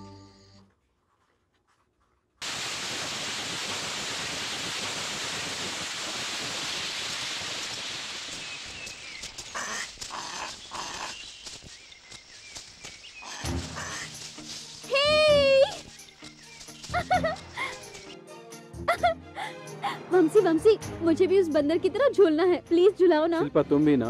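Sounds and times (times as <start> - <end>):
rustling: 0.7 - 2.4, 8.3 - 18.2
rushing hiss-like noise: 2.4 - 18.2
scattered clicks: 8.3 - 14.9, 15.7 - 18.2
animal call: 9.2 - 16.2.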